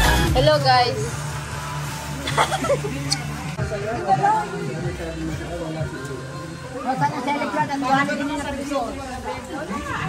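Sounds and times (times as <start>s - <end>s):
voices chattering: 0.3s - 10.0s.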